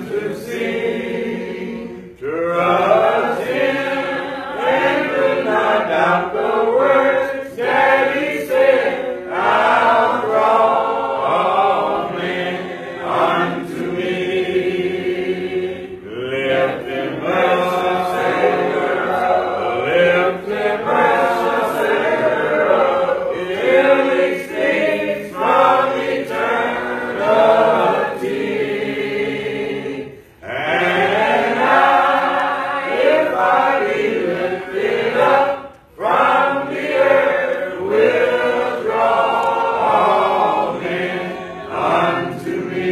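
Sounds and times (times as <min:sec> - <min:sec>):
congregation singing a hymn: 0:00.0 - 0:42.9.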